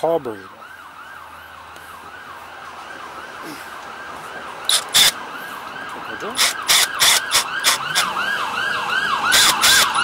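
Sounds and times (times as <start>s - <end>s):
siren yelping: 0.3s - 10.0s.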